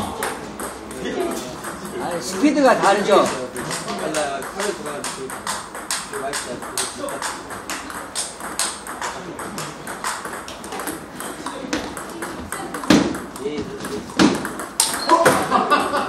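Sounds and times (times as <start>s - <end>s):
table tennis ball clicks: 0.0s - 2.0s, 3.1s - 15.4s.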